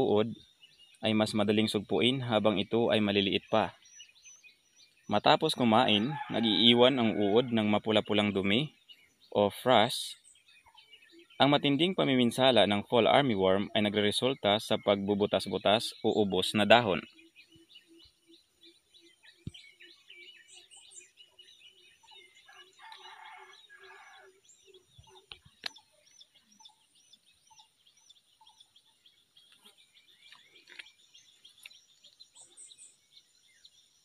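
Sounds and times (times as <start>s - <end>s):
small birds chirping: 0.0s - 34.0s.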